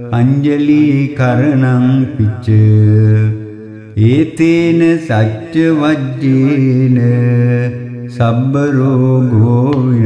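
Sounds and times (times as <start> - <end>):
person chanting verses: 0.0 - 10.0.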